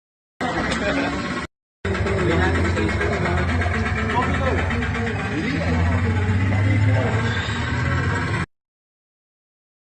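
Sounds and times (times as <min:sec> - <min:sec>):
people talking indistinctly: 0:00.4 - 0:08.5
steady low hum: 0:00.4 - 0:08.5.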